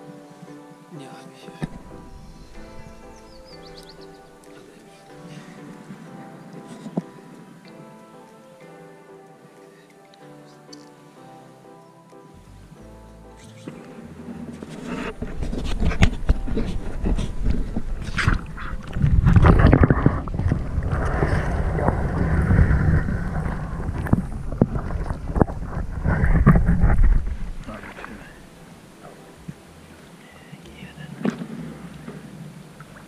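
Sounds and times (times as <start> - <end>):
water sloshing: 1.6 - 8.5, 13.7 - 33.0
heavy low rumble: 1.7 - 4.5, 14.0 - 28.6
knocks and clicks underwater: 14.5 - 28.2.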